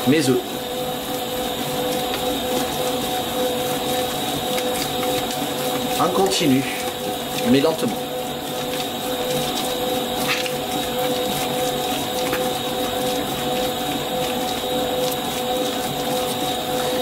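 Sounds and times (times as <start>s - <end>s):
stand mixer whining: 0.0s - 17.0s.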